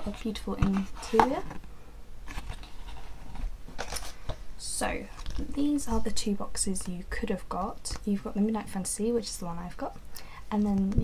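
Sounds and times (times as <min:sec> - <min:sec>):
low room hum: 0:00.0 - 0:11.0
cardboard box and card handled: 0:02.3 - 0:04.4.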